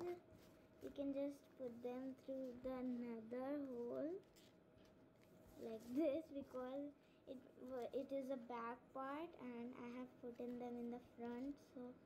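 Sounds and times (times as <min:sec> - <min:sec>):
child's wordless vocal sounds: 0:00.8 - 0:04.3.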